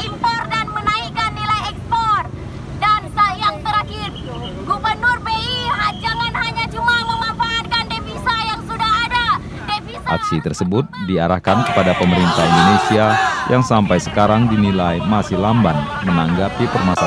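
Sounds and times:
street traffic rumble: 0.0 - 17.0
person shouting through a megaphone: 10.0 - 17.0.

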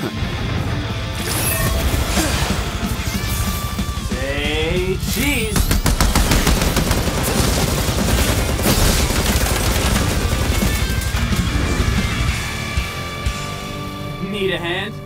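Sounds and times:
fight music: 0.0 - 15.0
machine-gun fire: 5.4 - 12.3.

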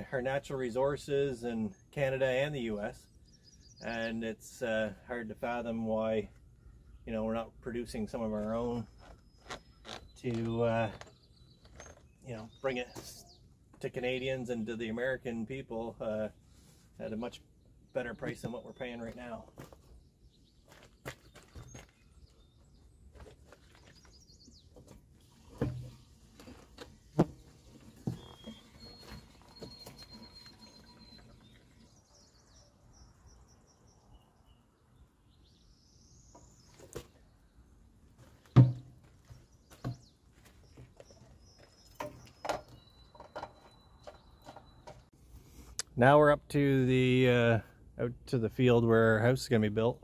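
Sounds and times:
birds chirping: 0.0 - 50.0
plastic jerry can clunking: 24.7 - 31.2, 38.5 - 39.0, 41.9 - 45.0.

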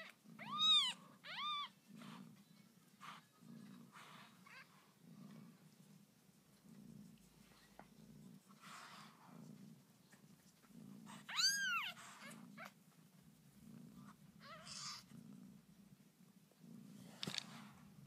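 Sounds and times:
cat mewing: 0.0 - 1.8, 11.2 - 12.7
cat purring: 0.0 - 18.0
brief rustle: 17.1 - 17.8.

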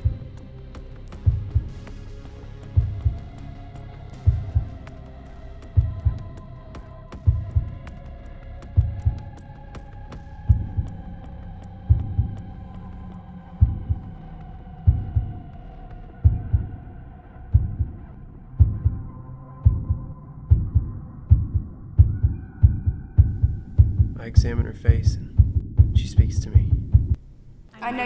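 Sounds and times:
heartbeat thumps: 0.0 - 0.4, 1.1 - 1.9, 2.6 - 3.5, 4.1 - 5.0, 5.6 - 8.0, 8.7 - 9.5, 10.1 - 11.1, 11.8 - 12.5, 13.5 - 14.1, 14.8 - 15.6, 16.2 - 16.8, 17.4 - 18.0, 18.6 - 27.4.

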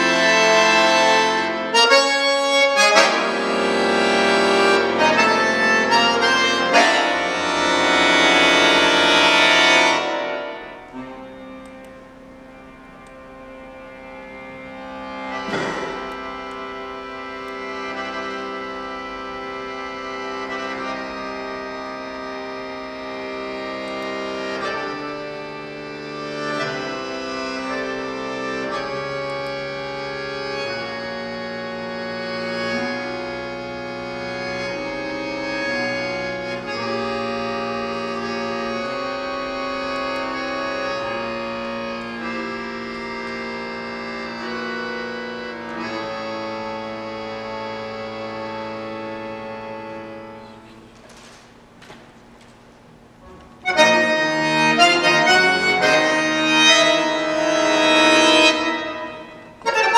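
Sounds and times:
button accordion chords: 0.0 - 59.9.

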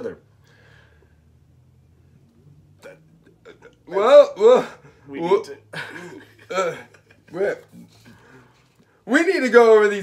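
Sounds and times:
stifled laugh: 5.7 - 8.1.

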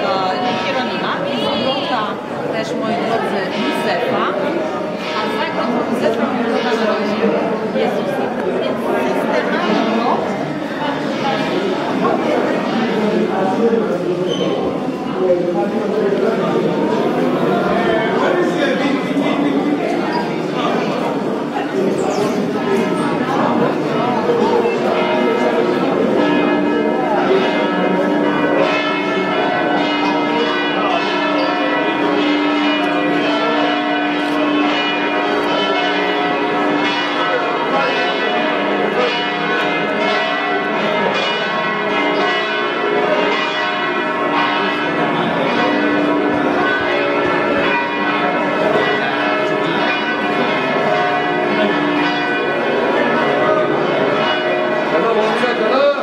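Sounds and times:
church bells pealing: 0.0 - 56.0.

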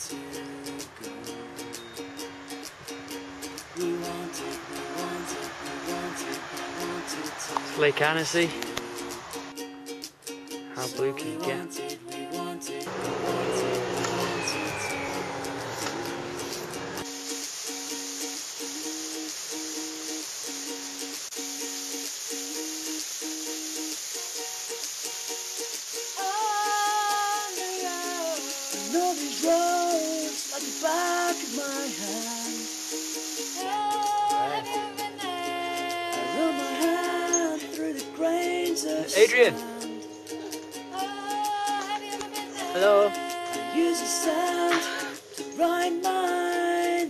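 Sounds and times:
ukulele music: 0.0 - 47.0.

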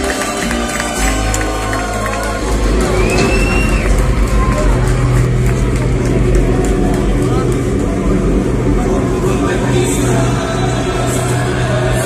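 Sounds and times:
live hardcore punk band: 0.0 - 12.0
crowd shouting: 0.4 - 5.7
steady low held note: 2.3 - 12.0.

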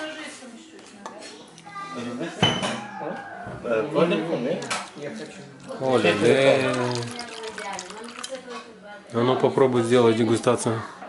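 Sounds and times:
bottle and tableware clinking on stone: 2.4 - 2.8.

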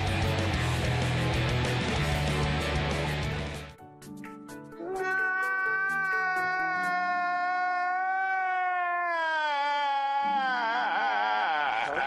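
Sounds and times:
man wailing: 4.8 - 12.0.

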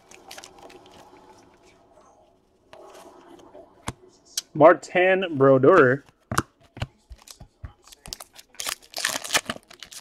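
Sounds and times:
foil wrapper crinkling: 7.8 - 10.0.

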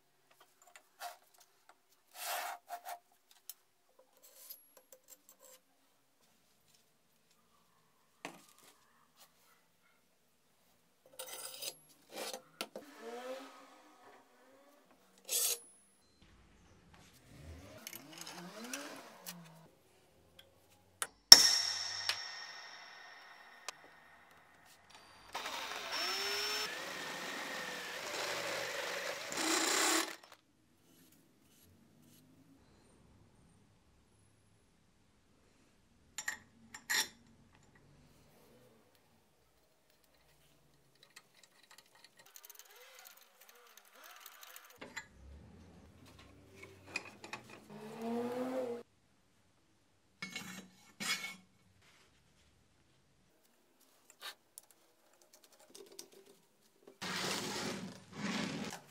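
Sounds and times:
metal handling: 21.0 - 24.4
cordless drill cutting steel tube: 24.9 - 30.4, 42.6 - 44.8.

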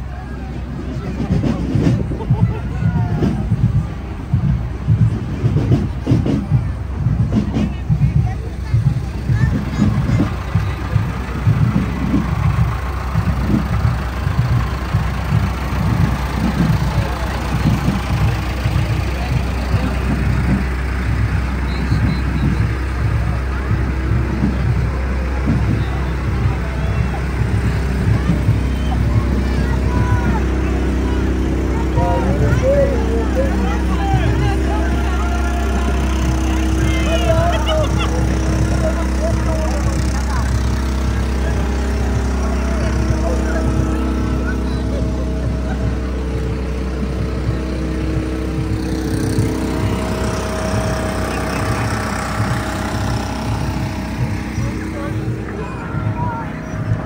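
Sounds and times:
crowd voices: 0.0 - 57.0
people calling and shouting: 0.0 - 57.0
tractor diesel engine running: 0.0 - 57.0.

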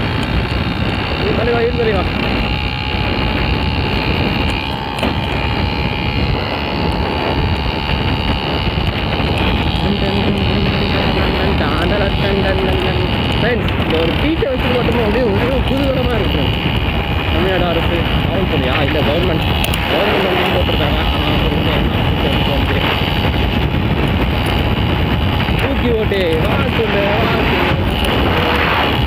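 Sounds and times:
small motorbike engine cruising: 0.0 - 29.0
wind rushing on microphone: 0.0 - 29.0
man humming: 2.0 - 16.6, 17.3 - 29.0.

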